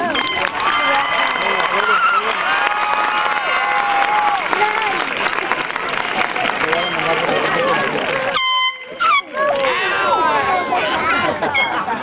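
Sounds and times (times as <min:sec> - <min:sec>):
crowd cheering and shouting: 0:00.0 - 0:12.0
air horn blast: 0:08.3 - 0:09.2.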